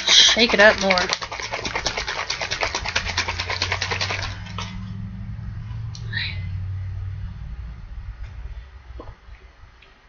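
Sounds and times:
liquid sloshing in shaken bottle: 0.0 - 4.8.

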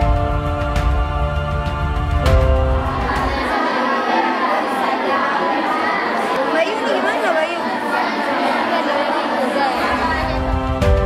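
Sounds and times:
young women chattering: 3.3 - 10.5.

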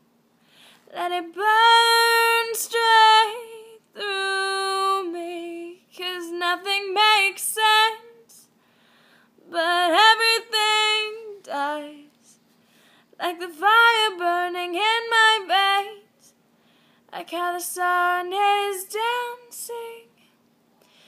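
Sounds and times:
woman singing unaccompanied: 0.9 - 8.5, 9.4 - 12.4, 13.2 - 16.3, 17.1 - 20.3.

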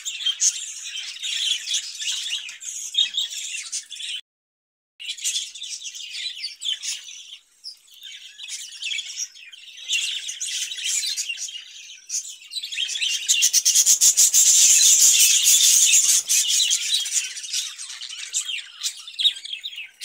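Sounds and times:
budgerigars chattering and chirping: 0.1 - 4.2, 5.1 - 20.0.

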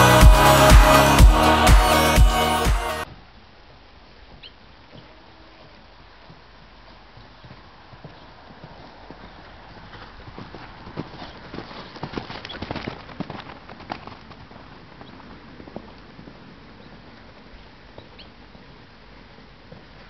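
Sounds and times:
horse hoofbeats on sand: 5.6 - 20.0.

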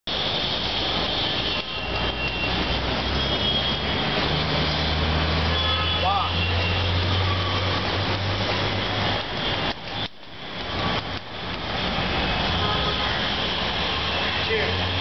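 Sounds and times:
city traffic noise: 0.0 - 15.0.

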